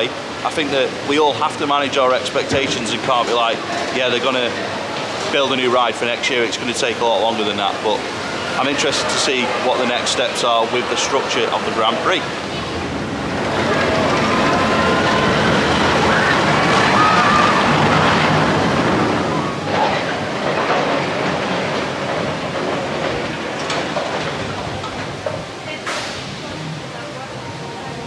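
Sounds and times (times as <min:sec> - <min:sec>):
amusement park noise: 0:00.0 - 0:28.0
roller coaster rumbling on track: 0:00.0 - 0:28.0.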